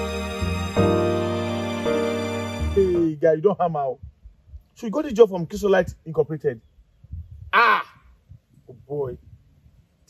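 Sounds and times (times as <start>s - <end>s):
man speaking: 2.7s - 4.1s, 4.8s - 6.6s, 8.7s - 9.2s
man exclaiming with delight: 7.5s - 8.0s.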